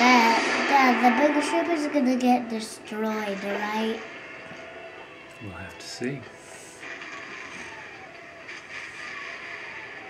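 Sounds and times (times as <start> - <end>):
spaceship engine noise: 0.0 - 10.0.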